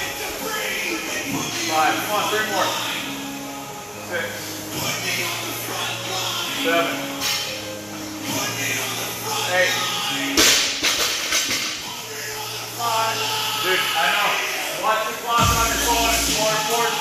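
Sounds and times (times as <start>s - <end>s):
music with singing: 0.0s - 17.0s.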